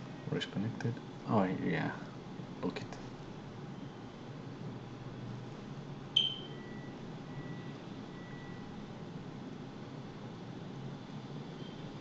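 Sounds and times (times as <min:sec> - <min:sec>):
low room noise: 0:00.0 - 0:12.0
short high electronic beep: 0:06.2 - 0:06.8.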